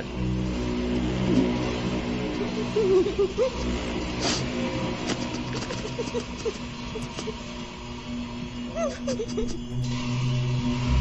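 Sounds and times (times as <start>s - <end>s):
low droning held tones: 0.0s - 11.0s.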